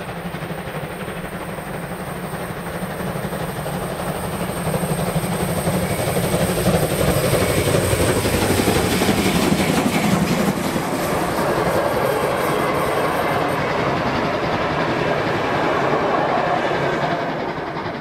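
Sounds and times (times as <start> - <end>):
steam locomotive working hard: 0.0 - 18.0
train coaches rolling on rails: 0.0 - 18.0.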